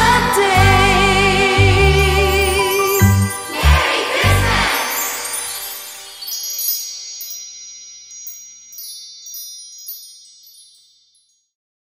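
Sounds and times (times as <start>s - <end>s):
high ringing chimes: 1.8s - 11.5s.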